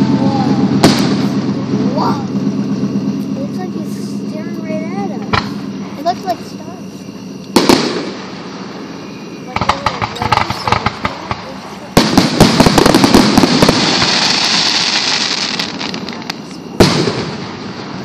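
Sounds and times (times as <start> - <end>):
fireworks bangs: 0.0 - 18.0
fireworks crackling: 0.0 - 18.0
small fireworks pops: 9.5 - 17.4.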